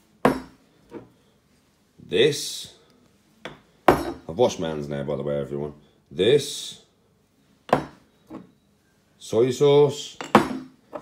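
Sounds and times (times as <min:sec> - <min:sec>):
glass bottle knocking on worktop: 0:07.7 - 0:08.0.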